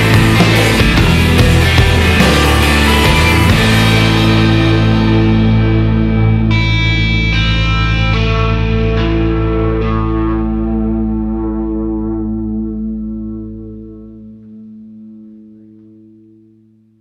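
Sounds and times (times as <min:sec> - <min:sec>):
distorted electric guitar chord: 0:00.0 - 0:17.0
low bass note: 0:00.0 - 0:17.0.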